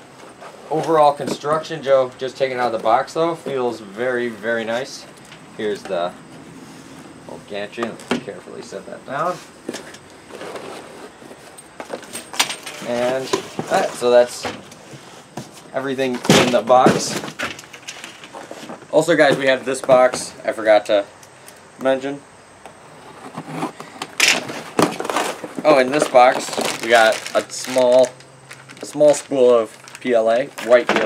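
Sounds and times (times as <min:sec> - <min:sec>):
cardboard box rustling: 0:12.9 - 0:15.8, 0:22.8 - 0:30.9.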